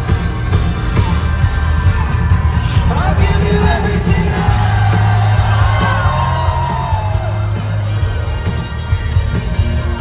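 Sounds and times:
live rock band: 0.0 - 10.0
person singing: 2.5 - 6.1.

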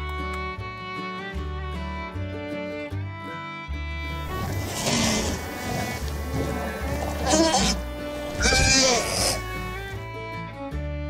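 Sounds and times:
background music: 0.0 - 11.0
dinosaur calls: 4.3 - 9.7.

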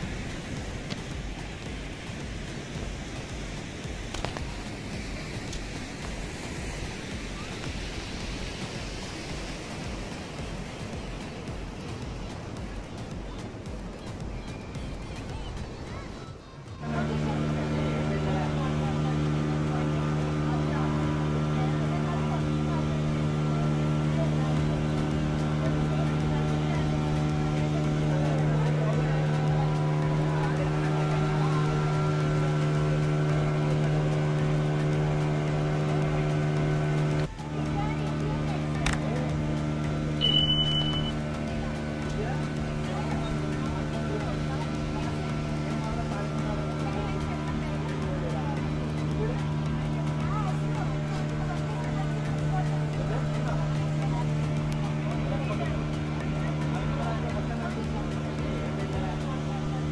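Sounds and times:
ferry engine droning: 0.0 - 59.9
brief high beep: 40.2 - 41.2.

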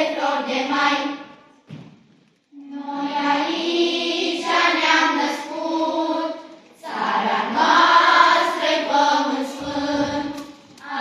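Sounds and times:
children's choir singing: 0.0 - 1.5, 2.5 - 11.0.

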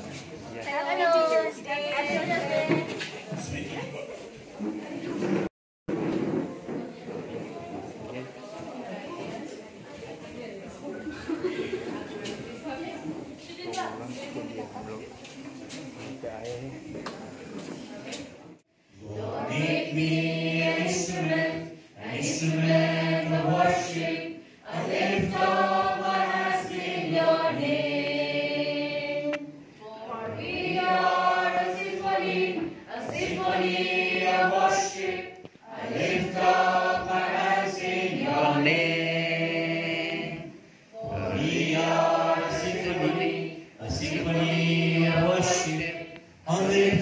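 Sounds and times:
group of voices singing: 0.0 - 3.5, 18.9 - 47.0.

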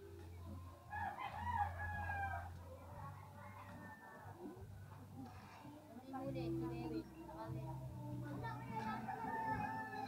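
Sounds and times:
rooster crowing: 9.1 - 10.0.

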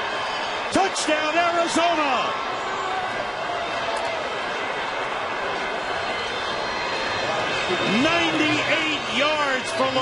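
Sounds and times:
stadium crowd voices: 0.0 - 10.0.

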